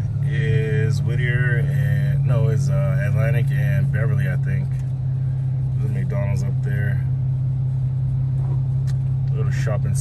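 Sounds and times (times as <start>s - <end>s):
car cabin low rumble: 0.0s - 10.0s.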